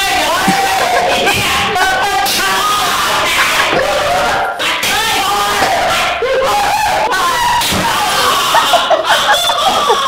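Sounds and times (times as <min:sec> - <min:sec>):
men laughing and shouting: 0:00.0 - 0:10.0.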